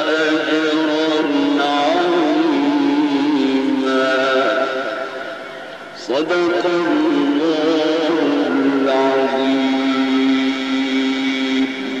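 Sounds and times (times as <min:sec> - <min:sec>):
man reciting in long melodic note: 0:00.0 - 0:12.0.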